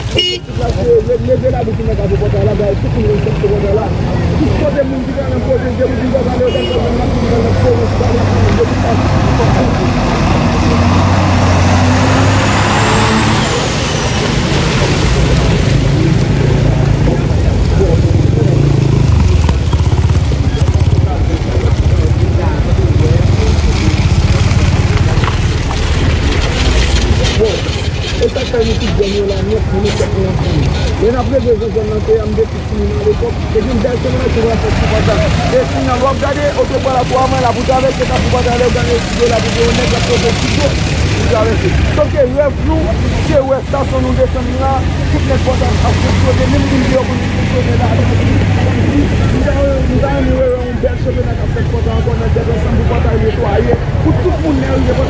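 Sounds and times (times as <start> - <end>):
people talking: 0.0 - 55.0
vehicle engine rumbling: 0.0 - 55.0.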